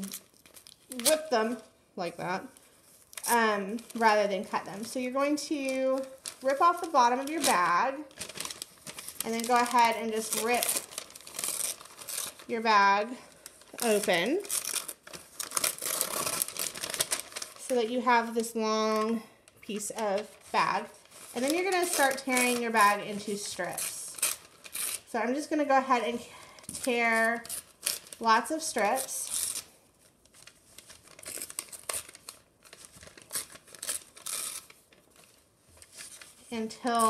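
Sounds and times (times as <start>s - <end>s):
paper bag tearing: 0.0s - 1.5s, 5.7s - 18.4s, 20.0s - 25.1s, 26.8s - 29.7s, 30.4s - 35.3s
paper rustling and crinkling: 2.5s - 25.1s, 26.5s - 37.0s.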